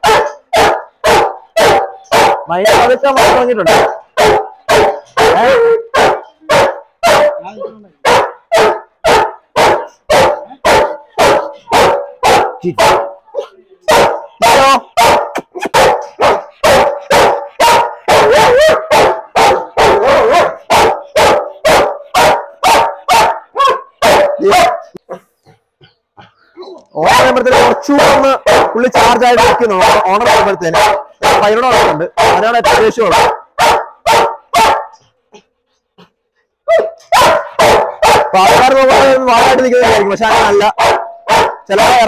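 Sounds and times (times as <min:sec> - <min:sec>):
dog barking loud and fast: 0:00.0 - 0:26.4, 0:27.0 - 0:42.0.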